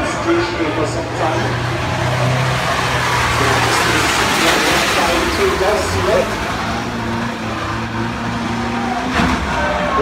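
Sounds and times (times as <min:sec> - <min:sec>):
track noise: 0:00.0 - 0:10.0
van engines droning: 0:00.0 - 0:10.0.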